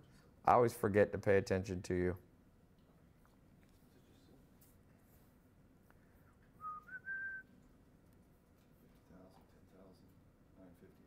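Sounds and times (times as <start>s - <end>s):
person whistling: 6.6s - 7.5s.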